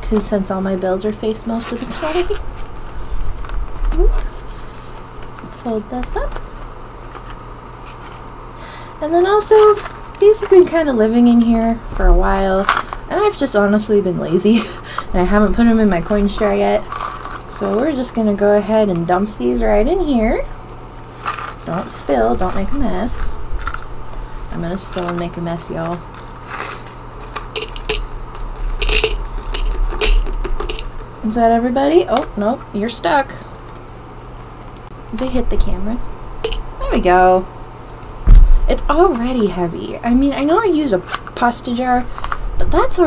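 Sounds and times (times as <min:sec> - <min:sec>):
low steady hum: 0:00.0 - 0:43.0
coins poured into glass jar: 0:26.5 - 0:30.9.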